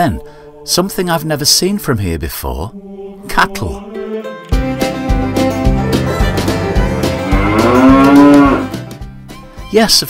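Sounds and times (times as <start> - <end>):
cow mooing: 7.0 - 8.8.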